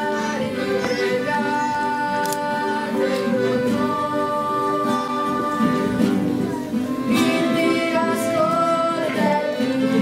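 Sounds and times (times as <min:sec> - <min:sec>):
accordion playing folk tune: 0:00.0 - 0:10.0.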